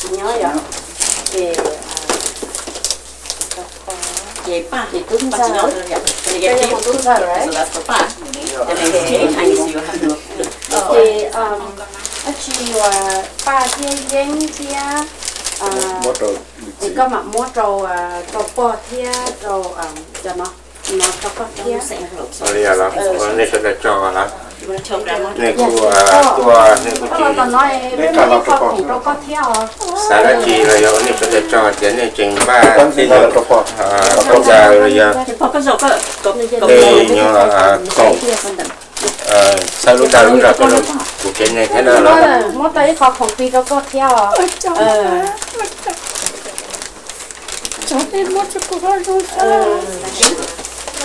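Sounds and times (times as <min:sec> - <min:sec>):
people talking: 0:00.0 - 0:00.7, 0:01.3 - 0:02.3, 0:03.5 - 0:46.7, 0:47.8 - 0:51.0.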